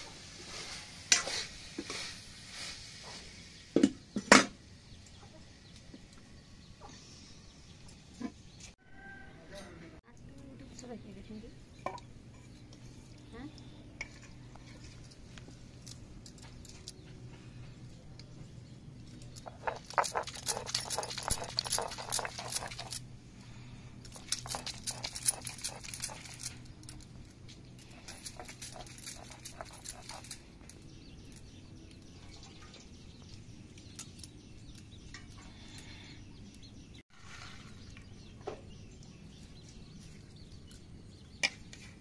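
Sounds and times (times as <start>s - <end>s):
stone roller grinding wet rice: 19.2s - 23.0s, 24.1s - 26.7s, 27.9s - 30.4s.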